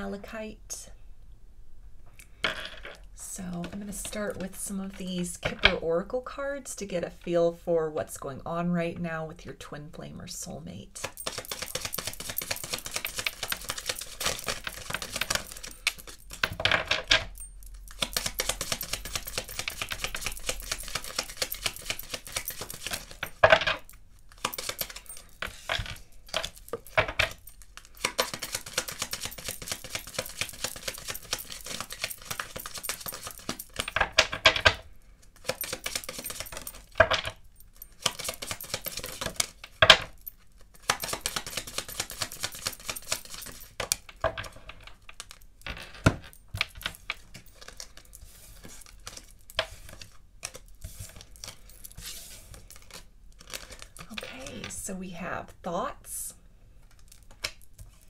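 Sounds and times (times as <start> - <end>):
cards being shuffled: 11.0 - 16.4, 17.9 - 34.4, 35.4 - 36.8, 37.9 - 39.6, 40.7 - 54.8.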